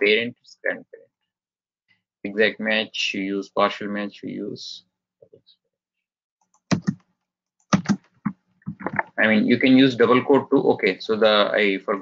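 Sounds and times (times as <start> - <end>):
computer keyboard keystrokes: 6.4 - 9.0.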